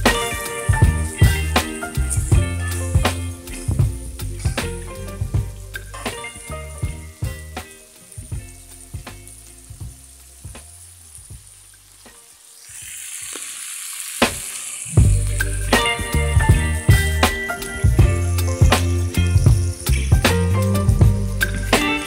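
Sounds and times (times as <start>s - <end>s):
background music with beat: 0.0s - 11.6s, 14.2s - 22.0s
meat and beans sizzling in pan: 6.1s - 16.2s.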